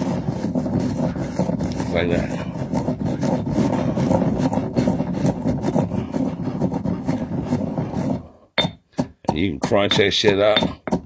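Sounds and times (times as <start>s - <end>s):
pestle grinding rice in stone mortar: 0.0s - 11.0s.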